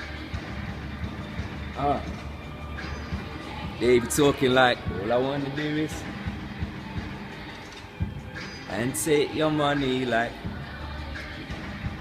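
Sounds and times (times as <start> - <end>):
hip-hop beat: 0.0 - 7.4, 8.0 - 12.0.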